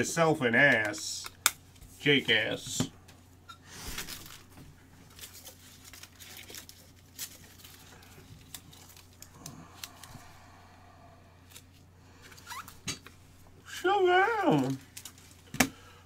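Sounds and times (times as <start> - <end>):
steady low hum: 0.0 - 16.0
cards and packaging rustling: 3.7 - 10.5, 14.0 - 15.8.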